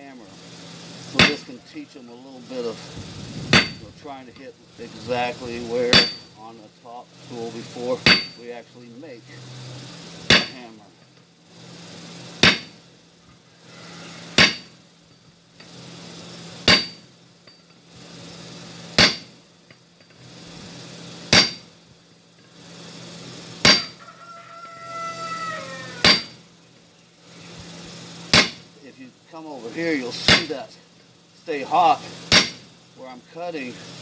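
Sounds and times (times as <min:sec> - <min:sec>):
hammer striking hot steel on anvil: 0:01.1 - 0:01.6, 0:03.5 - 0:03.8, 0:05.9 - 0:06.3, 0:08.0 - 0:08.4, 0:10.2 - 0:10.7, 0:12.4 - 0:12.8, 0:14.3 - 0:14.8, 0:16.6 - 0:17.8, 0:19.0 - 0:19.4, 0:21.3 - 0:21.7, 0:23.6 - 0:24.0, 0:26.0 - 0:26.4, 0:28.3 - 0:28.7, 0:30.2 - 0:30.6, 0:32.3 - 0:32.6
rooster crowing: 0:13.5 - 0:14.4, 0:23.8 - 0:26.3.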